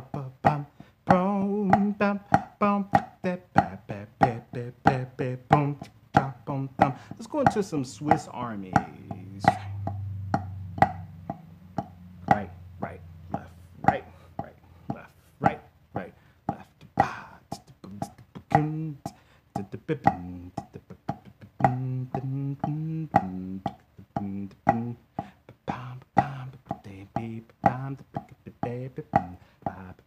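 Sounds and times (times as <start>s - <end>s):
man singing short notes: 0.0s - 11.6s, 12.2s - 30.0s
drumsticks on a practice pad: 0.0s - 30.0s
man humming: 3.6s - 30.0s.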